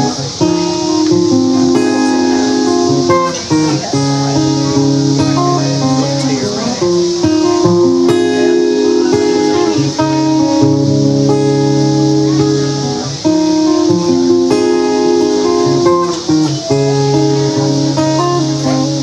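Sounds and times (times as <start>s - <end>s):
acoustic guitar chords: 0.0s - 19.0s.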